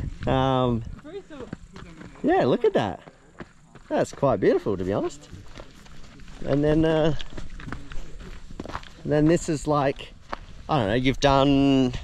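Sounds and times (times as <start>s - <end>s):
footsteps on gravel: 0.0s - 12.0s.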